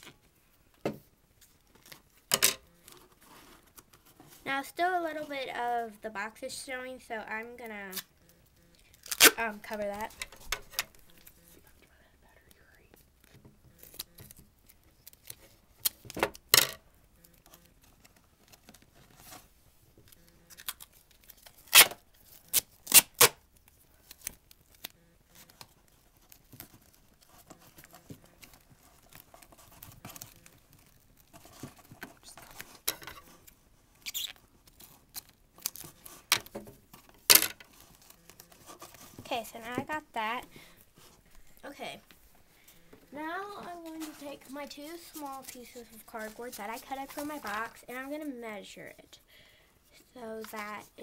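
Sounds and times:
rustling handling noise: 0:00.0 - 0:05.9, 0:07.6 - 0:49.2
duct tape ripping: 0:07.9 - 0:08.1, 0:08.9 - 0:09.5, 0:20.1 - 0:36.5.

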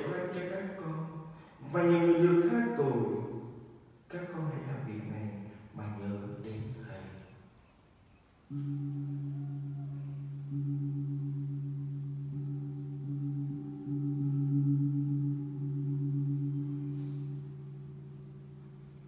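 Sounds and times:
deep gong ringing: 0:08.5 - 0:19.0.

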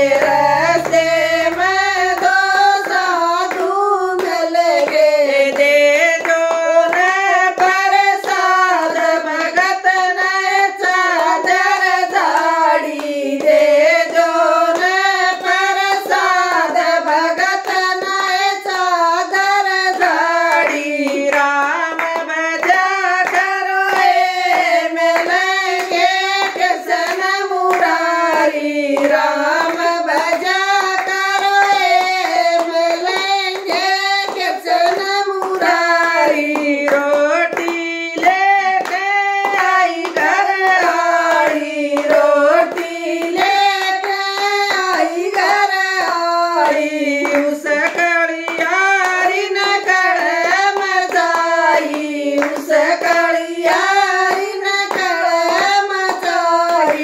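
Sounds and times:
rhythmic hand claps: 0:00.0 - 0:57.0
women singing devotional song: 0:00.0 - 0:57.0.

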